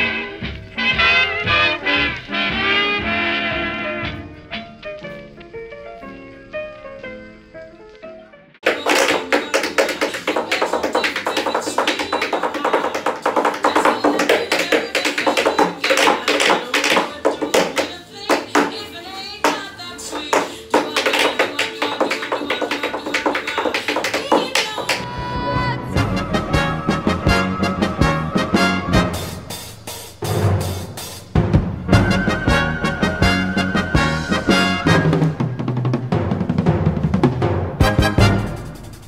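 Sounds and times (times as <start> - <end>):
tap shoes on tap board: 8.6 - 18.8, 19.4 - 25.0
swing jazz song: 8.6 - 39.0.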